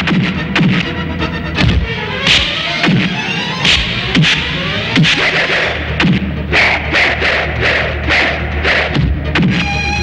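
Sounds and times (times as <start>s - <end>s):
film background score: 0.0s - 10.0s
sharp hit sound effects: 2.1s - 6.3s.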